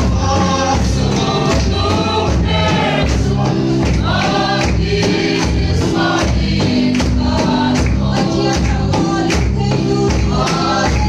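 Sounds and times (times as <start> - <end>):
congregation singing a hymn: 0.0 - 11.0
hand-beaten drums: 0.0 - 11.0
hand clapping: 1.1 - 11.0.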